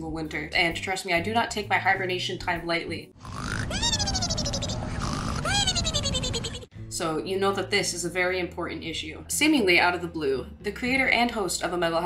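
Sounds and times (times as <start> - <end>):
cartoon snoring with whistle: 3.2 - 5.8.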